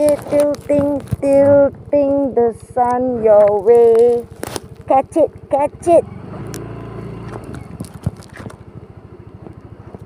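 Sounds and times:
scooter engine idling: 0.0s - 10.0s
stronger engine hum: 0.0s - 10.0s.

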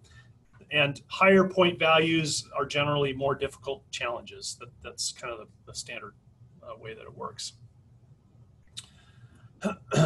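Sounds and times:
man clearing his throat: 9.6s - 10.0s.

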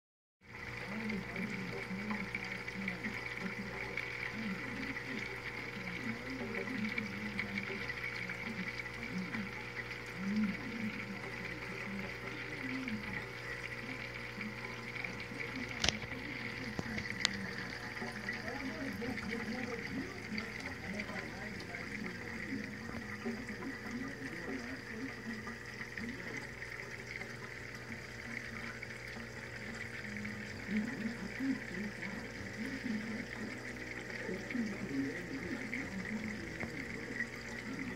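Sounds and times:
pump hum: 0.4s - 37.9s
water churning and splashing: 0.4s - 37.9s.

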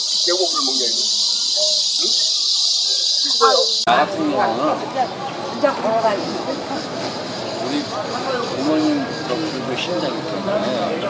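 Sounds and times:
insect chorus drone: 0.0s - 11.0s
man talking: 0.3s - 2.3s.

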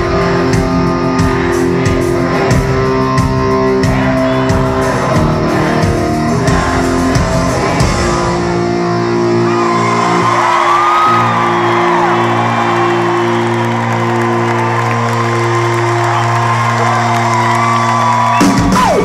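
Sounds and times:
crowd cheering and whooping: 0.0s - 19.0s
rock band holding a chord: 0.0s - 19.0s.

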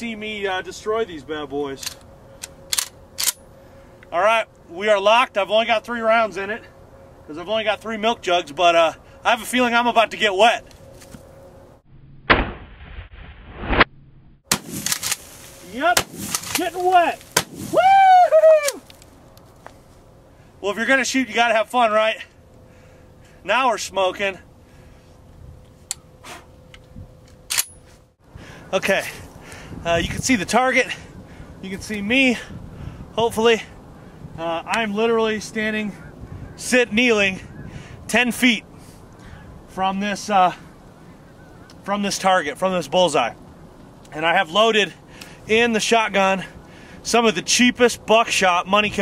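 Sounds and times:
shotgun slide metallic clacks: 1.8s - 3.4s, 14.5s - 15.4s
shotgun handling clicks and rustles: 1.8s - 4.1s, 10.6s - 11.3s, 14.5s - 17.5s, 25.3s - 28.1s.

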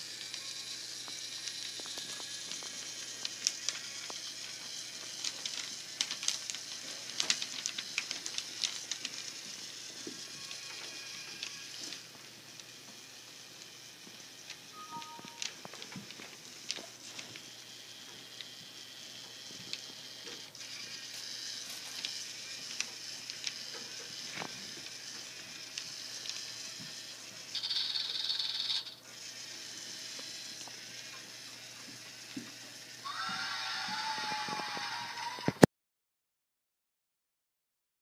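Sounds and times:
toy robot motor whir: 0.0s - 35.6s
cheering sound clip: 33.1s - 35.6s.

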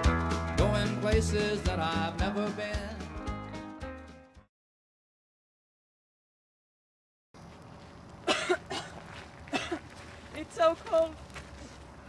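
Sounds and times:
person coughing: 8.3s - 9.8s.

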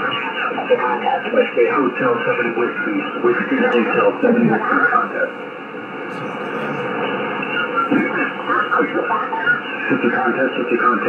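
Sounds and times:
distant radio voices: 0.0s - 11.0s
radio band noise hiss: 0.0s - 11.0s.

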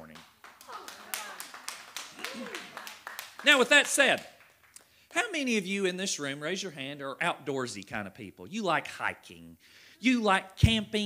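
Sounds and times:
scattered handclaps: 0.0s - 4.8s.

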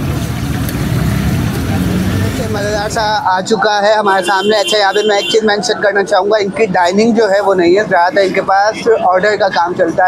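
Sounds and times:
man talking: 1.7s - 10.0s.

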